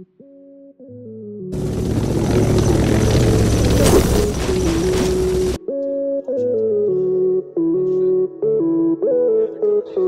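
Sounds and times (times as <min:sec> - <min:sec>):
loud mechanical roar: 0:01.6 - 0:05.6.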